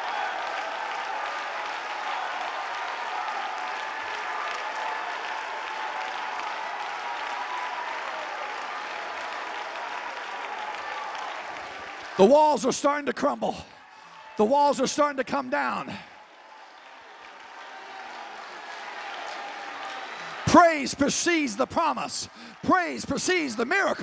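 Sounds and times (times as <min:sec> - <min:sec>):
congregation clapping: 0:00.0 - 0:24.0
congregation shouting praise: 0:00.0 - 0:24.0.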